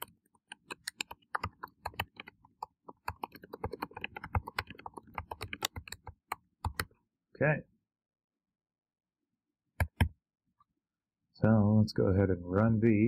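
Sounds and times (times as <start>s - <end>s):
computer keyboard key clicks: 2.9s - 6.9s.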